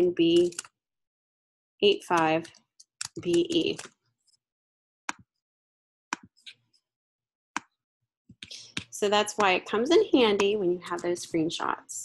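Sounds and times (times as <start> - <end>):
mouse and keyboard clicks: 0.4 - 0.7, 2.1 - 3.9.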